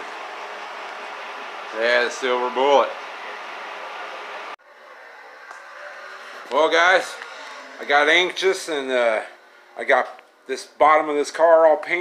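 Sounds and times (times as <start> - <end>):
heater fan blowing: 0.0 - 12.0.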